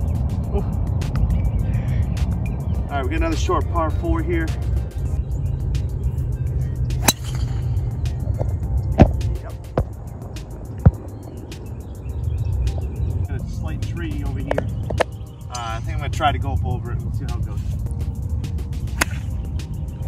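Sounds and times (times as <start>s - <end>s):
background music: 0.0s - 20.0s
golf club striking ball: 6.9s - 9.2s, 18.7s - 19.4s.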